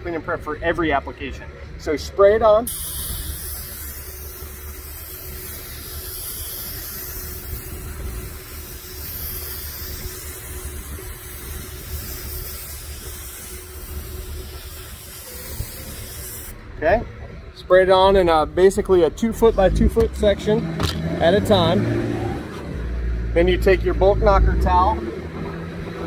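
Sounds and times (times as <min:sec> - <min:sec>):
spray gun hissing: 0:02.7 - 0:16.6.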